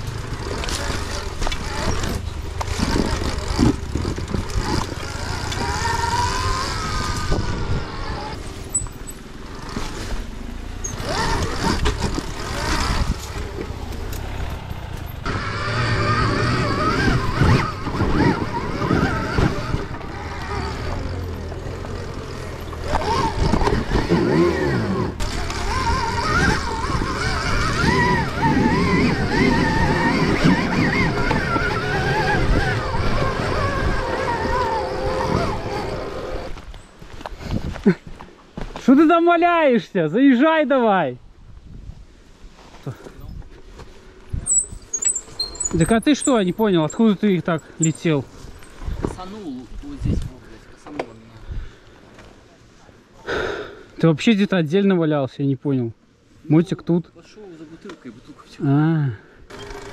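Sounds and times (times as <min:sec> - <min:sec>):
off-road motorcycle engine revving: 0:00.0 - 0:36.7, 0:44.5 - 0:51.2, 0:59.5 - 0:59.9.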